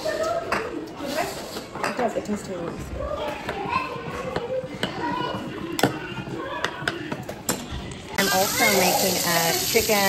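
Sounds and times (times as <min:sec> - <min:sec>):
faint background voices: 0:00.0 - 0:10.0.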